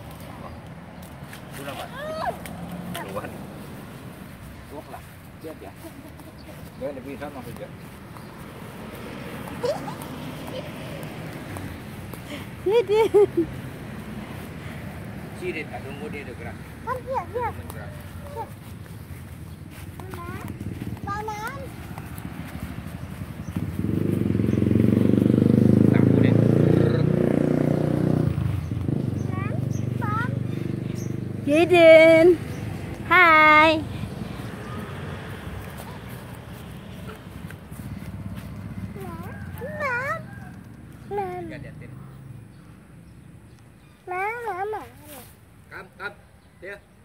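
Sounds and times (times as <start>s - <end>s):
vehicle engine passing: 0.0s - 46.8s.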